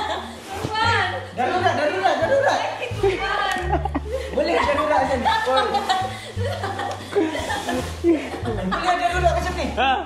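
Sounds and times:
people laughing: 0.0 - 0.5, 1.1 - 9.6.

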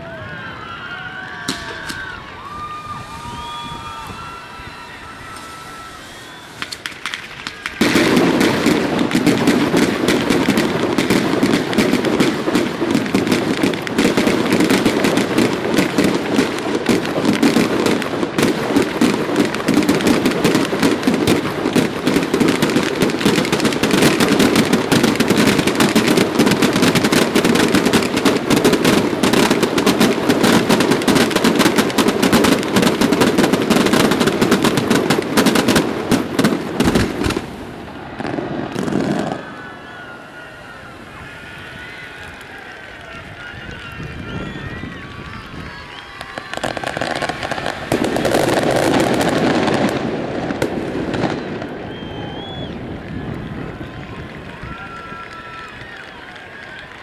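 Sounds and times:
rapid barrage of firework bangs: 5.2 - 39.6, 44.0 - 54.9.

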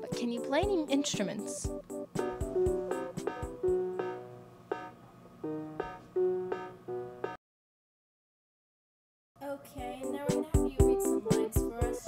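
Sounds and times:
keyboard playing notes and chords: 0.0 - 7.4, 9.9 - 12.0.

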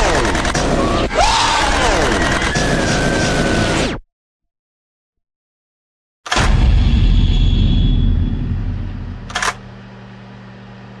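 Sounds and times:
deep boom: 6.4 - 9.4
low steady hum: 7.3 - 11.0.

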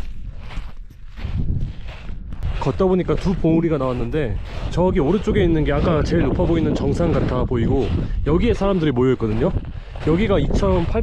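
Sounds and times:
footsteps crunching on sand: 0.0 - 11.0.

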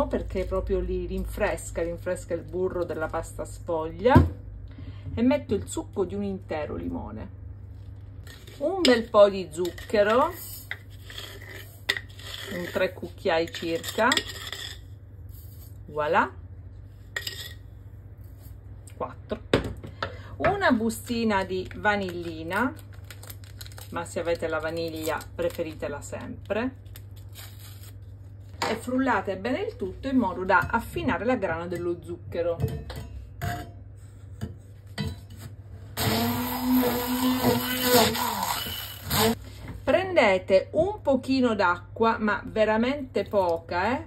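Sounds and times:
immersion blender whirring: 36.0 - 39.4.

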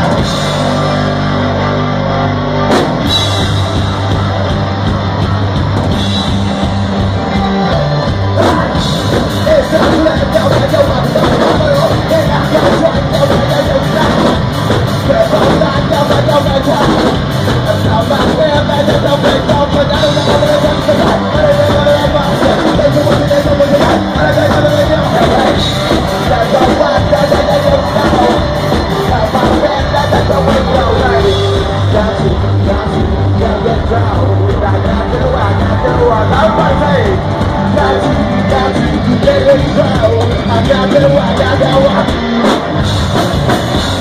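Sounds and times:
drum kit: 0.0 - 44.0
electric guitar: 0.0 - 44.0
held low bass notes: 0.0 - 44.0.

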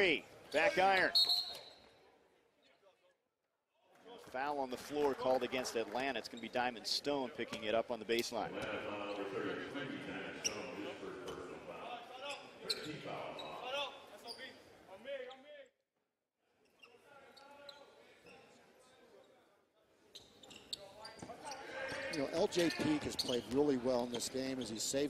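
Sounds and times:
crowd chatter: 8.2 - 13.8.

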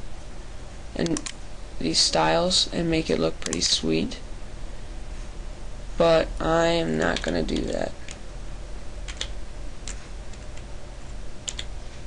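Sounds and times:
steady low hum: 0.0 - 12.0
sharp computer control clicks: 1.0 - 1.4.

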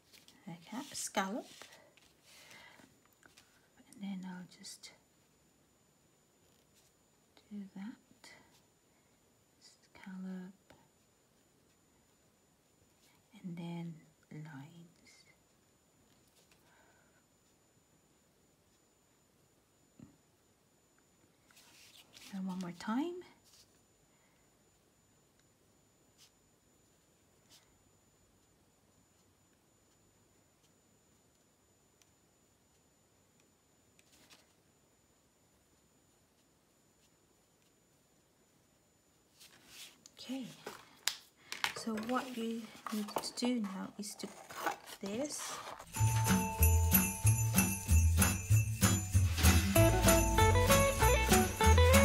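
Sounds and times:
woman speaking: 0.4 - 1.7, 3.8 - 5.0, 7.5 - 8.4, 13.4 - 15.2, 22.3 - 23.4, 40.2 - 40.8, 41.8 - 45.7.

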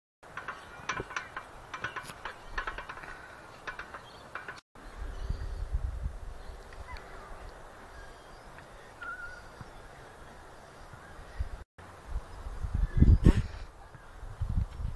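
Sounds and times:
metal pivots squeaking: 0.2 - 4.6
wind rumble on microphone: 4.8 - 8.2, 11.0 - 14.9.

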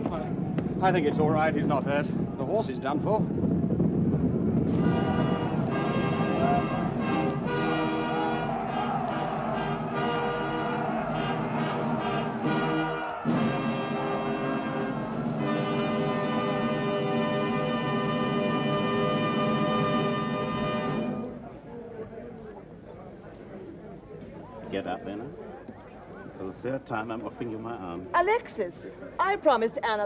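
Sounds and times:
crowd noise: 0.0 - 30.0
orchestral brass chords: 4.7 - 21.5.

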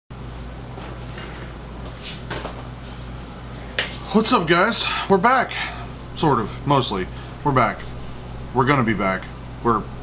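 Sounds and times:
low electrical hum: 0.1 - 10.0
person speaking: 4.0 - 10.0.

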